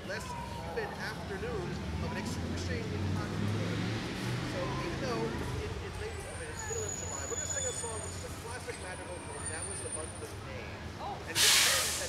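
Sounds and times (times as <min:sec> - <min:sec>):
murmur of people talking: 0:00.0 - 0:12.0
sudden loud hiss: 0:11.4 - 0:12.0.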